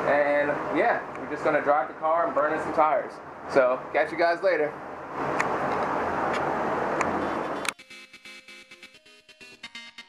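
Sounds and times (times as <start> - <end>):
background music with a beat: 7.3 - 10.0.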